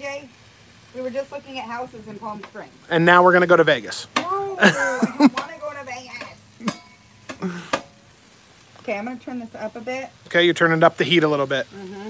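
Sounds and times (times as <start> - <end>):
vegetables sizzling on a griddle: 0.0 - 12.0.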